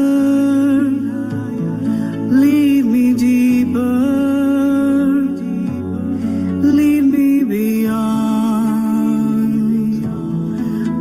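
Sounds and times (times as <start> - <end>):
quiet musical accompaniment: 0.0 - 11.0.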